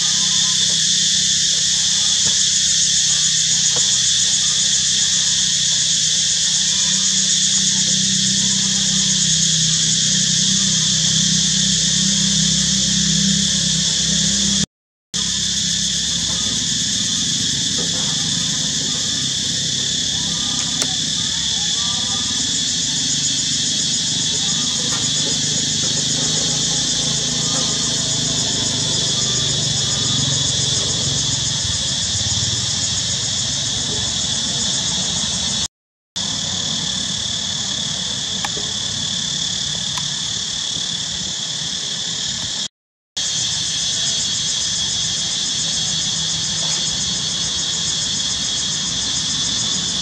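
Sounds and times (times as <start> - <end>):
insects chirring: 0.0 - 14.6, 15.2 - 50.0.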